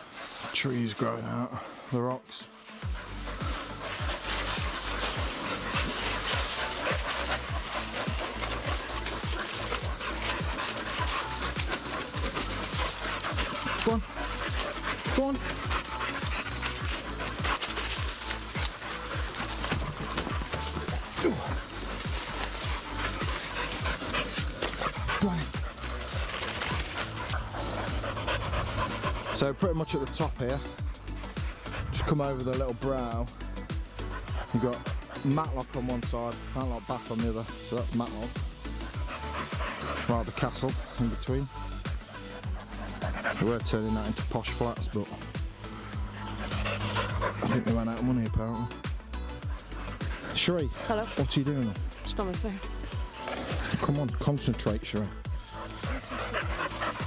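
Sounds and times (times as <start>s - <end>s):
footsteps on leaf-covered path: 0.0s - 29.4s
dog panting: 0.0s - 57.0s.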